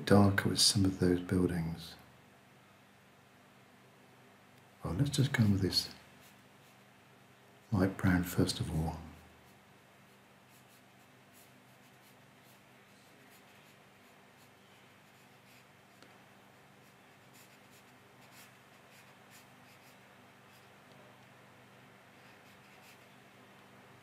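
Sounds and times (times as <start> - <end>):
low room tone hum: 0.0 - 24.0
brush scratching on paper: 9.4 - 20.8, 22.2 - 23.2.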